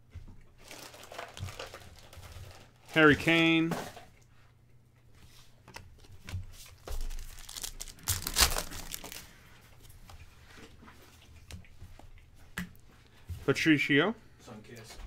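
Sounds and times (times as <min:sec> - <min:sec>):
trading cards rustling: 0:05.7 - 0:09.4.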